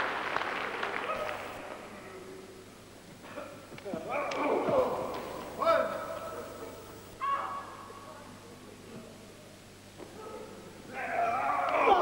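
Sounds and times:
spectator high-pitched shout: 7.2s - 7.9s, 10.9s - 12.0s.

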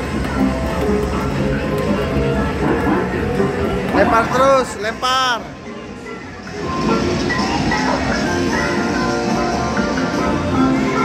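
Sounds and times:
electronic arcade game music: 0.0s - 11.0s.

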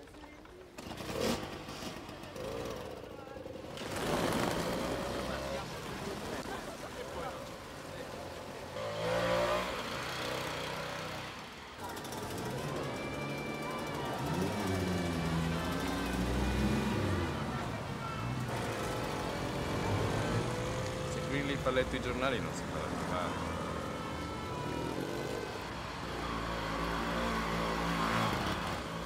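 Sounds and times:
street sounds: 0.0s - 29.0s
scooter two-stroke engine running: 0.6s - 6.4s, 8.7s - 21.4s.

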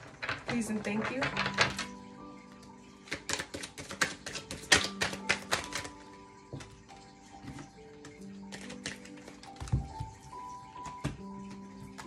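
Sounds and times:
soft background music: 0.0s - 12.0s
cards being shuffled by hand: 3.0s - 6.7s, 7.5s - 10.2s.

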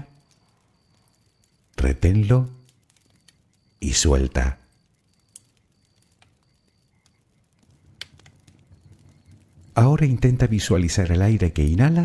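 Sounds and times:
campfire crackling: 0.0s - 12.0s.

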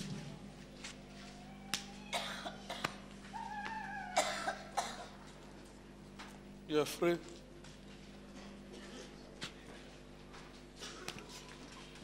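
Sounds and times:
person coughing: 2.1s - 2.9s, 4.2s - 5.2s.

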